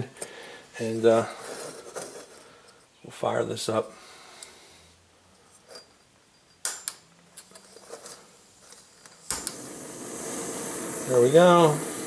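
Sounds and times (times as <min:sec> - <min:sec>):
burning gas hissing: 0:00.0 - 0:02.5, 0:07.9 - 0:12.0
burner igniter click: 0:09.3 - 0:09.7.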